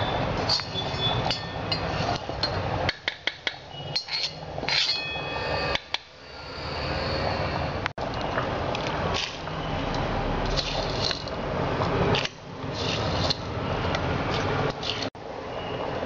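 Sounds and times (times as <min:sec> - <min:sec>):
steel kitchen vessels clinking: 0:00.0 - 0:06.1
steady background hum: 0:00.0 - 0:16.0.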